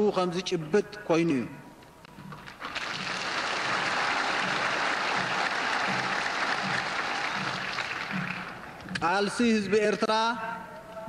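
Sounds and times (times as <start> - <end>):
large crowd applauding: 2.6 - 8.8.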